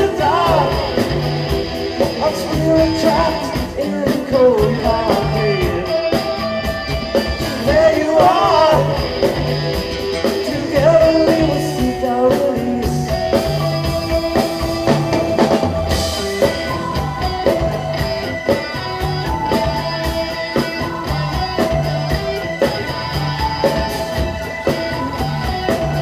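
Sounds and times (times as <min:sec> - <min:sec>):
person singing: 0:00.0 - 0:09.6, 0:10.2 - 0:15.6
bass guitar: 0:00.0 - 0:26.0
drum kit steady beat: 0:00.0 - 0:26.0
electric guitar: 0:00.0 - 0:26.0
keyboard: 0:00.0 - 0:26.0.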